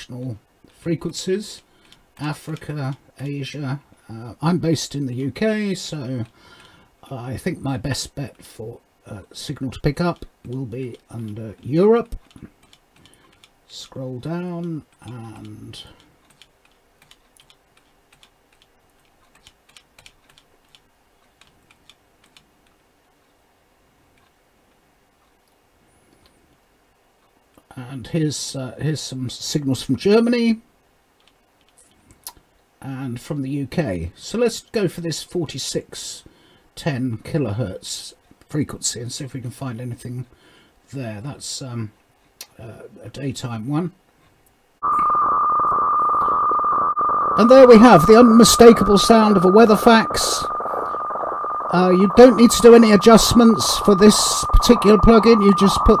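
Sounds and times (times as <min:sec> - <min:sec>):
faint computer clicks: 0:01.8 - 0:03.0
radio hiss: 0:44.8 - 0:56.0
steady whistling radio tone: 0:44.8 - 0:56.0.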